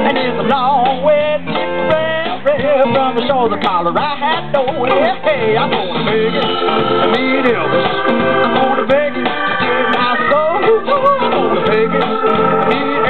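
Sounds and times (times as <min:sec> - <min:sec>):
live band playing: 0:00.0 - 0:13.0
organ chords: 0:00.0 - 0:13.0.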